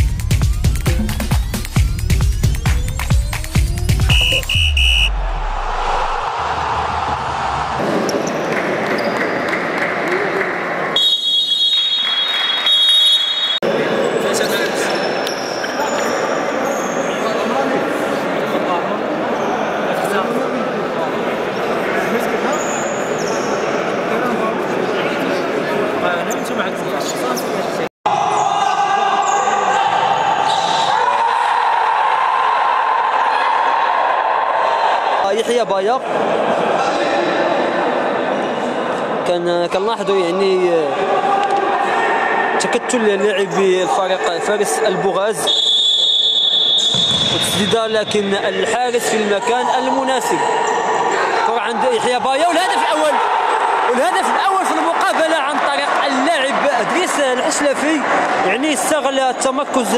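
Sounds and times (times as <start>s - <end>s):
indoor hall echoing ambience: 0.0s - 59.9s.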